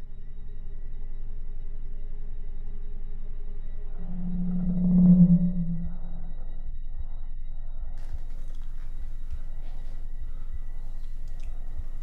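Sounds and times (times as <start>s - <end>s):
continuous low rumble: 0.0s - 12.0s
low drone tone: 0.0s - 12.0s.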